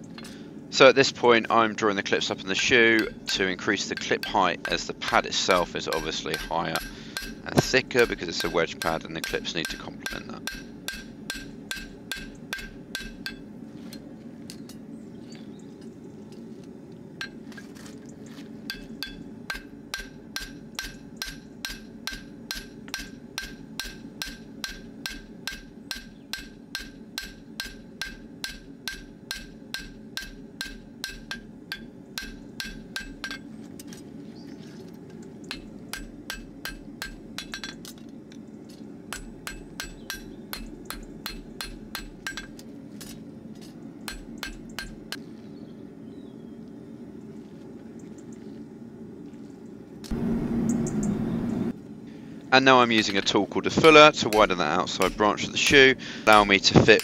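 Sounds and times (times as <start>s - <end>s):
hammer striking metal on anvil: 3.0s - 13.5s, 18.7s - 33.5s, 35.5s - 37.9s, 39.1s - 43.2s, 44.0s - 45.2s, 53.0s - 57.0s.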